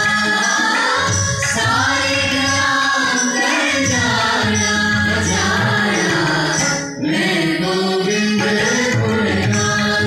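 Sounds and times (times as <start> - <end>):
choir singing devotional song: 0.0 - 10.0
harmonium: 0.0 - 10.0.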